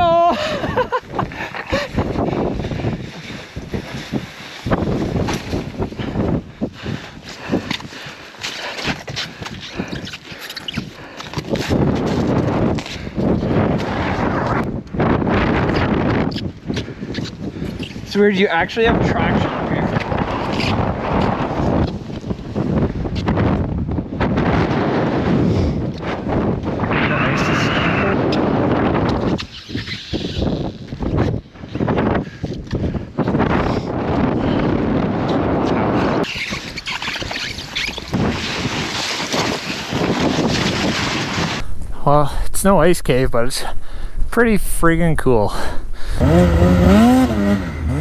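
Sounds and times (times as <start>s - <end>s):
loud rushing wind on microphone: 0.0s - 8.2s, 11.0s - 48.0s.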